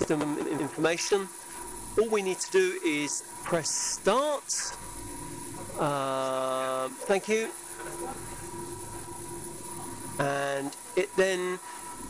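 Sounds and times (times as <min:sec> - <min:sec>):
low equipment hum: 0:00.0 - 0:12.0.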